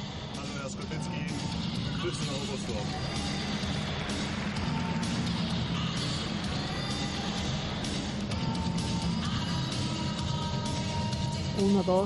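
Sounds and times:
arena background music: 0.0 - 12.0.

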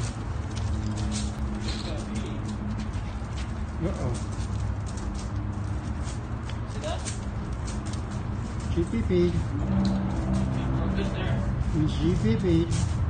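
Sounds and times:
steady low hum: 7.2 - 13.0.

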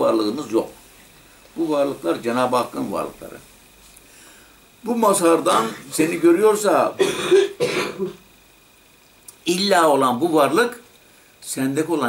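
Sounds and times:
man clearing his throat: 5.5 - 5.9, 7.0 - 8.2.

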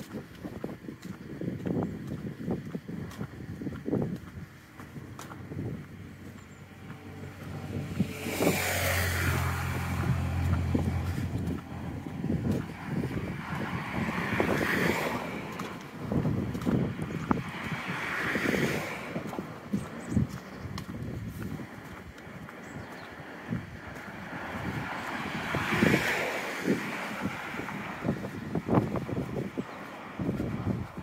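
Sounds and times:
footsteps tapping: 0.0 - 8.1, 9.4 - 13.7, 14.4 - 25.6
cars passing: 0.0 - 31.0.

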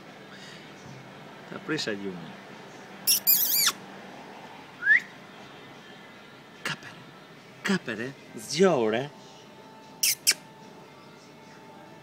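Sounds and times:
puppy squeak: 3.1 - 3.8, 10.0 - 10.4
puppy whining: 3.1 - 3.8.

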